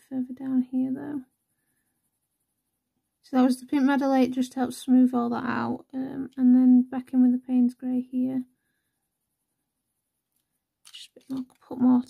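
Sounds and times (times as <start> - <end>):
person speaking: 3.3 - 8.4, 10.9 - 12.0.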